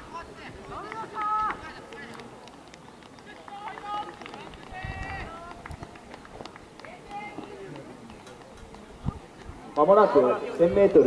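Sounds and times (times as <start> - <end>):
spectators shouting encouragement: 0.0 - 2.4, 3.2 - 6.1
running footsteps on track: 0.0 - 11.0.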